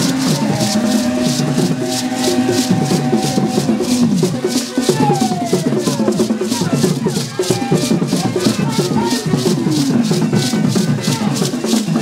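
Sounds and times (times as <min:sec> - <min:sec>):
gourd shaker beat: 0:00.0 - 0:12.0.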